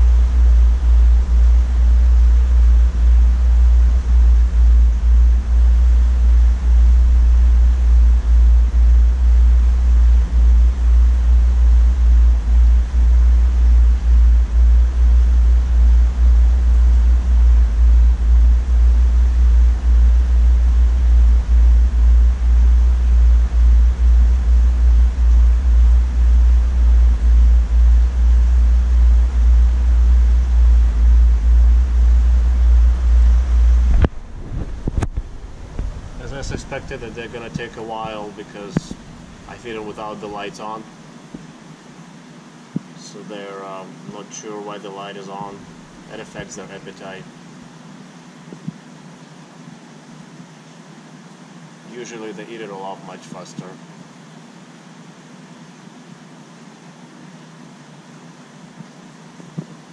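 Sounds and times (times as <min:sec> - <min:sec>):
deep rumble of tank water: 0:00.0 - 0:43.0.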